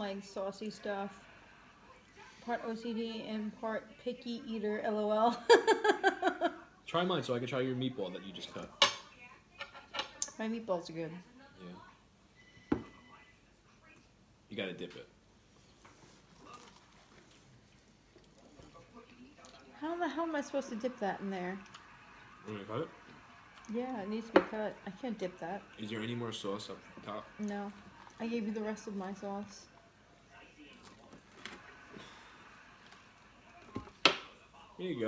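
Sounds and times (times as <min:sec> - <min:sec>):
soft chewing: 0:15.4 - 0:19.8, 0:26.8 - 0:28.2, 0:29.7 - 0:34.8.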